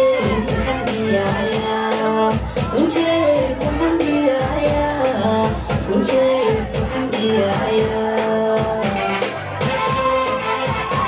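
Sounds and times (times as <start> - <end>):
amplified backing music with beat: 0.0 - 11.0
woman singing into a microphone: 0.0 - 11.0.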